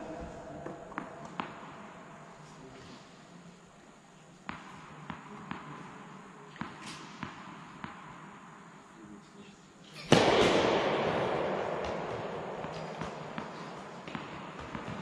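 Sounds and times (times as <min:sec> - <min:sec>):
tennis ball bouncing on court: 0:00.6 - 0:01.8, 0:04.4 - 0:08.4, 0:10.1 - 0:15.0.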